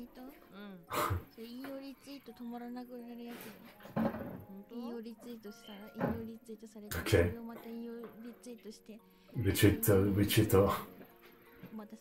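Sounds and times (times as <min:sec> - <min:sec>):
women speaking: 0:00.0 - 0:03.6.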